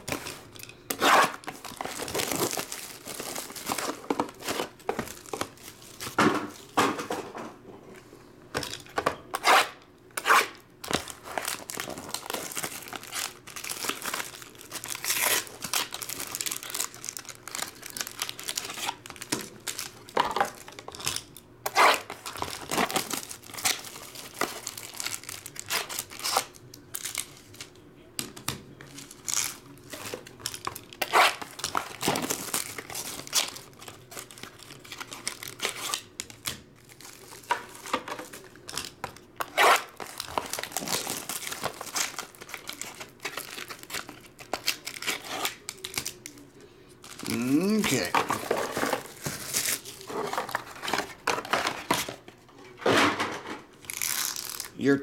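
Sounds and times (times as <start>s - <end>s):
plastic shrink wrap crinkling: 0.0s - 6.8s, 10.8s - 27.8s, 28.8s - 52.4s, 53.7s - 54.9s.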